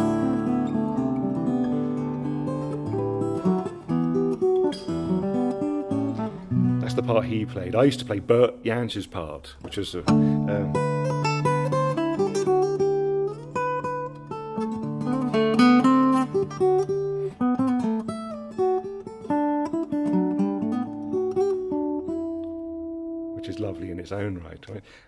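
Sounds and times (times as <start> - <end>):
acoustic guitar fingerpicked: 0.0 - 24.4.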